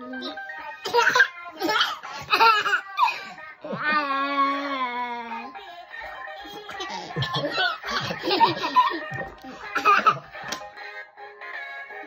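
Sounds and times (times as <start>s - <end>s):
baby and toddler laughing: 0.8s - 4.0s, 6.4s - 10.4s.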